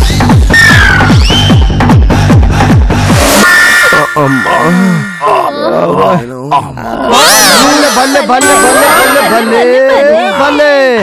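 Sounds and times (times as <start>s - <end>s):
man groaning: 4.0s - 7.2s.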